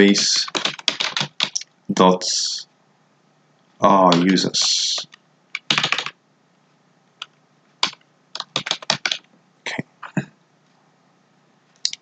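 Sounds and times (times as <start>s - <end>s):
computer keyboard keystrokes: 0.5s - 1.6s, 4.1s - 4.3s, 5.0s - 6.1s, 7.2s - 9.3s.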